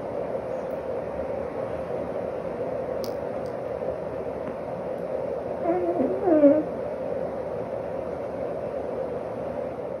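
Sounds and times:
faint steady hum: 0.0s - 10.0s
cat squeaky sleep noise: 5.6s - 6.7s.

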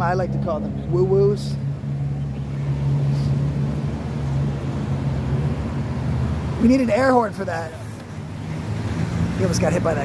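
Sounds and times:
road noise: 0.0s - 10.0s
vehicle engine humming: 0.0s - 10.0s.

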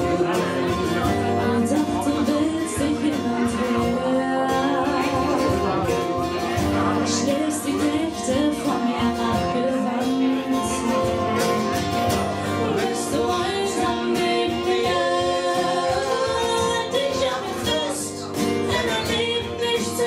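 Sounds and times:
acoustic guitars strumming: 0.0s - 20.0s
person singing: 0.0s - 20.0s.

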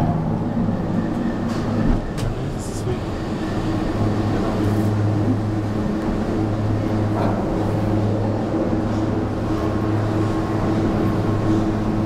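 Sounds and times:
cable car machinery hum: 0.0s - 12.0s.

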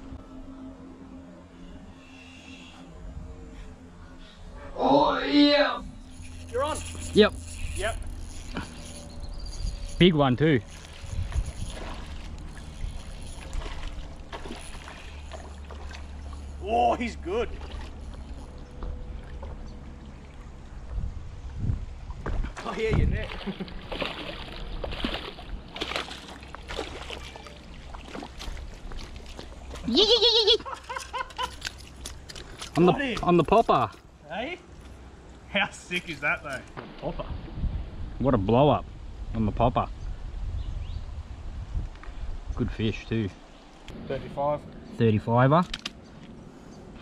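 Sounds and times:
fishing reel winding: 6.0s - 15.3s
fish splashing at surface: 10.6s - 16.4s, 23.2s - 29.9s.

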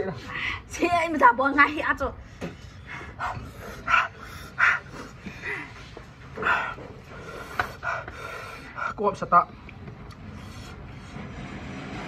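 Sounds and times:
person panting hard: 2.2s - 9.0s.

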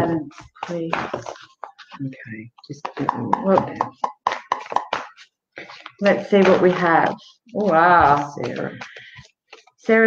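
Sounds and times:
cards being shuffled: 0.2s - 3.6s, 4.3s - 10.0s.

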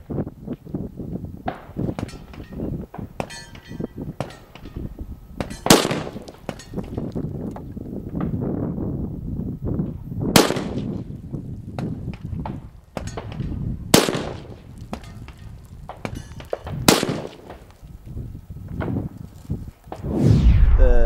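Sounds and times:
rifle shots with echo: 5.6s - 6.3s, 10.4s - 10.9s, 13.9s - 14.6s, 16.8s - 17.6s.

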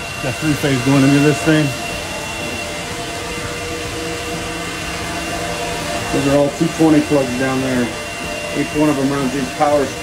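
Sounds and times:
cooling fans rushing: 0.0s - 10.0s
thin high whine: 0.0s - 10.0s.

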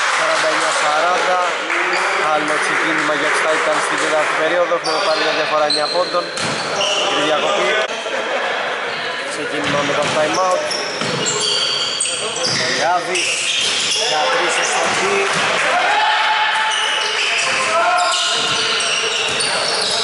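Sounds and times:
players calling out: 0.6s - 20.0s
sneaker squeaks on floor: 4.8s - 7.4s, 8.9s - 15.0s, 16.6s - 20.0s
basketball bouncing: 6.3s - 6.7s, 9.6s - 10.4s, 11.0s - 11.3s, 14.8s - 15.6s, 18.3s - 19.5s.

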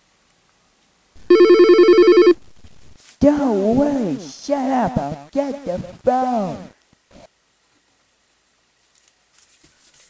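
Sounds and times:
telephone ringing: 1.2s - 3.0s.

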